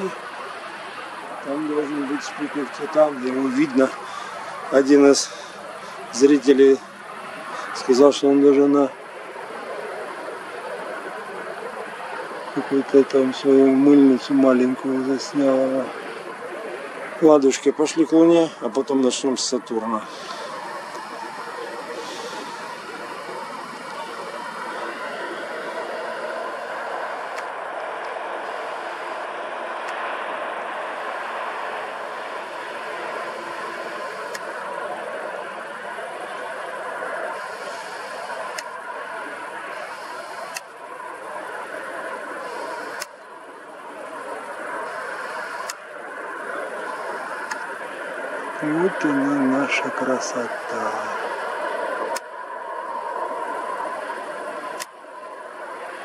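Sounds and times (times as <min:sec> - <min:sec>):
road traffic: 0:00.0 - 0:56.0
faint clicks: 0:34.2 - 0:34.6, 0:39.8 - 0:40.8, 0:42.5 - 0:43.3, 0:45.2 - 0:45.8, 0:46.8 - 0:47.7, 0:54.6 - 0:55.0.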